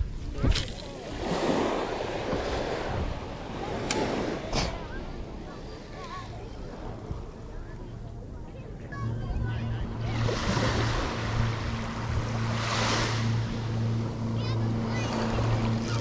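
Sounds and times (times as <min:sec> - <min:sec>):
small waves washing on sand: 0:00.4 - 0:07.1, 0:09.9 - 0:16.0.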